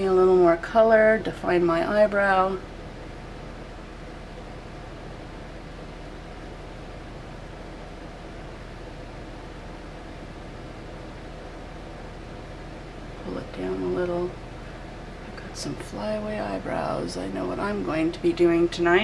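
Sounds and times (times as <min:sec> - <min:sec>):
faint low hum: 0:00.0 - 0:19.0.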